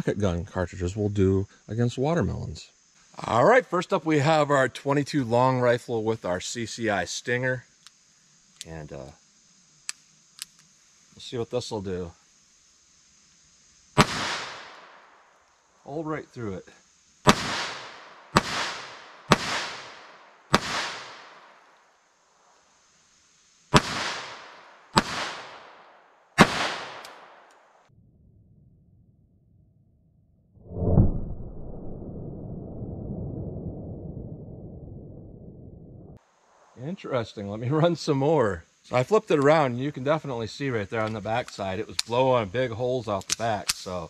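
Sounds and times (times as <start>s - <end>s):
pistol shots with echo: 14.0s - 14.8s, 17.3s - 21.2s, 23.8s - 25.8s, 26.4s - 27.5s
low rushing noise: 30.6s - 36.9s.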